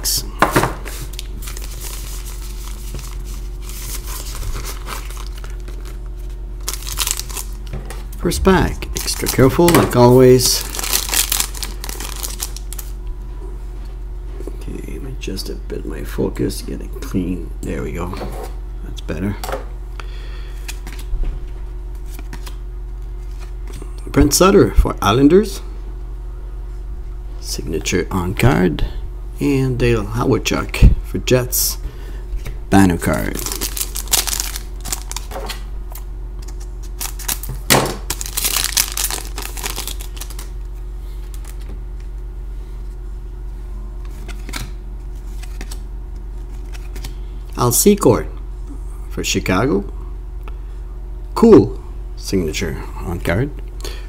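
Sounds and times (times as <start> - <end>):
steady low hum: 0.0 - 54.0
cards rustling: 0.9 - 7.7, 8.9 - 13.0, 20.6 - 21.1, 22.0 - 22.6, 33.0 - 35.4, 36.4 - 41.7, 44.2 - 47.2
foil wrapper crinkling: 1.0 - 7.7, 8.9 - 13.0, 33.0 - 35.5, 36.5 - 41.7.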